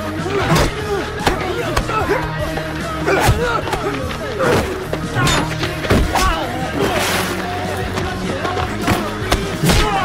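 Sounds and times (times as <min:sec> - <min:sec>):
men grunting: 0:00.0 - 0:07.3.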